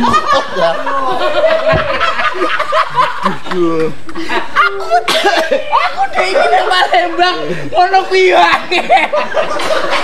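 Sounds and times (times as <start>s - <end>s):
people laughing: 0.0s - 10.0s
voices: 0.0s - 10.0s.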